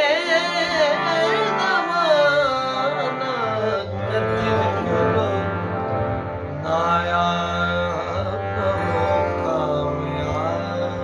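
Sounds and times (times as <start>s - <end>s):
harmonium playing: 0.0s - 11.0s.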